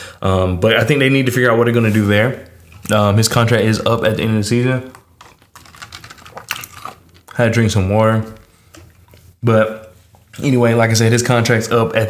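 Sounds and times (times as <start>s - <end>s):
person drinking water: 4.9s - 7.4s, 8.4s - 10.4s.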